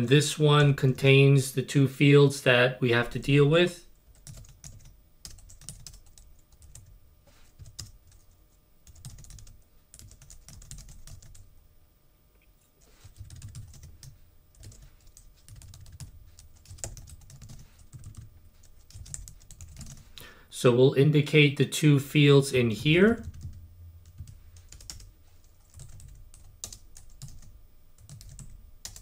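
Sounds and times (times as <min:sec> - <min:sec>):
typing on computer keyboard: 0:04.1 - 0:06.9, 0:07.5 - 0:11.4, 0:13.1 - 0:20.1, 0:24.1 - 0:29.0.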